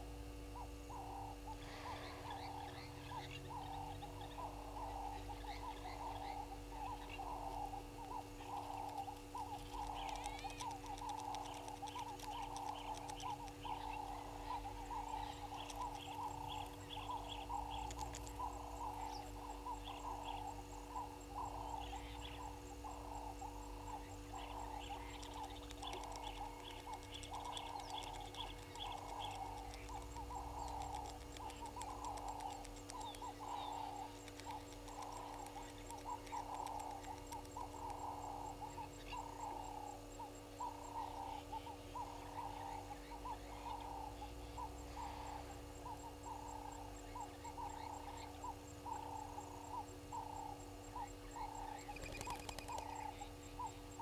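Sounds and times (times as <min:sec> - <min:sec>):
steady low hum: 0:00.0 - 0:54.0
repeating animal calls: 0:00.3 - 0:54.0
faint high chirps: 0:00.5 - 0:54.0.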